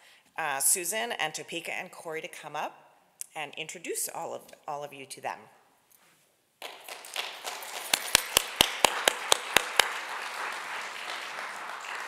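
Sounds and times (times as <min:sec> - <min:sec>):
audience applause: 0:06.6 - 0:12.0
sharp loud claps: 0:06.6 - 0:12.0.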